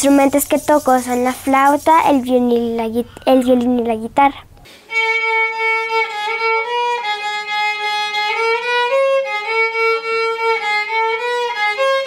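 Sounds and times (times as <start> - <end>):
solo violin melody: 4.9 - 12.0.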